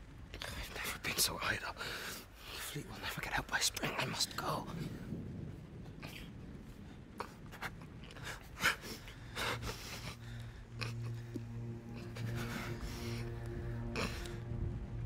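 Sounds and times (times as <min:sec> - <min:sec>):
person weeping quietly: 0:07.1 - 0:15.0
soft film score note: 0:10.6 - 0:15.0.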